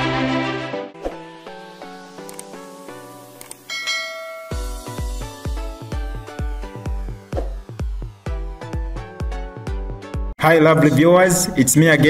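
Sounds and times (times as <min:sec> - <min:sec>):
light intro music: 0:00.0 - 0:10.4
bright bell chime: 0:03.7 - 0:05.2
bass-heavy electronic beat: 0:04.5 - 0:10.3.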